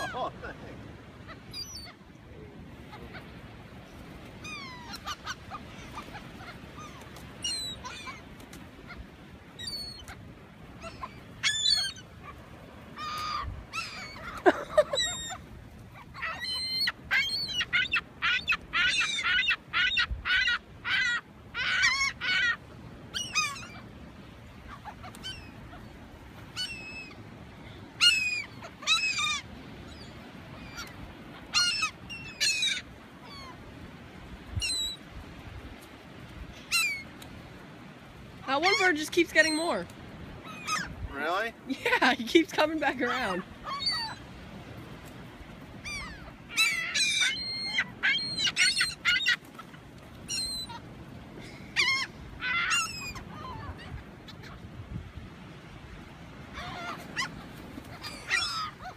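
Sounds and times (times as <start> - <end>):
gulls calling with harsh cries: 0.0 - 35.1, 36.6 - 37.5, 38.4 - 41.8, 42.6 - 44.8, 45.7 - 54.9, 56.3 - 58.9.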